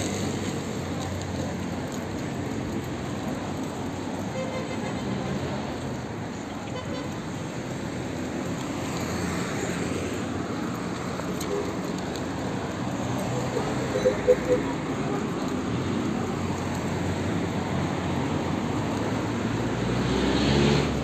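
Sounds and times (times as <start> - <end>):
car traffic: 0.0 - 21.0.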